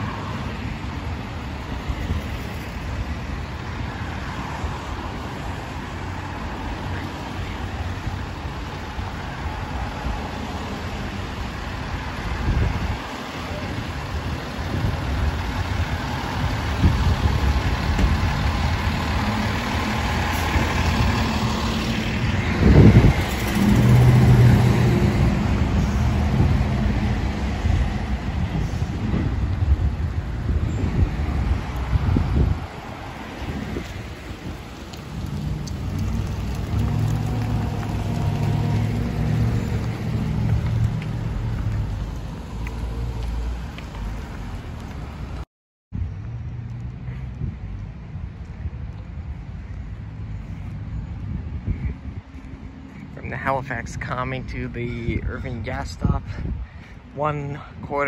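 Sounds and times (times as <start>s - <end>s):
car and truck engines passing: 0.0s - 45.4s, 46.0s - 57.8s.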